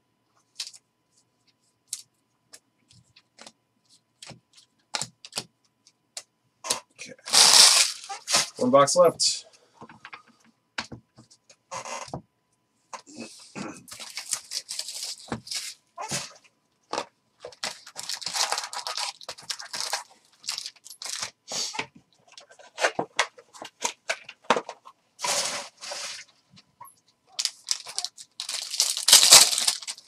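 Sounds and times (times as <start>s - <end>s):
plastic wrapped packs crinkling: 7.2s - 8.6s, 13.9s - 15.8s, 16.9s - 21.4s, 27.3s - 30.0s
wrapper tearing: 7.2s - 8.6s, 13.9s - 16.3s, 16.9s - 21.4s, 27.4s - 30.0s
cardboard box tearing: 7.3s - 8.6s.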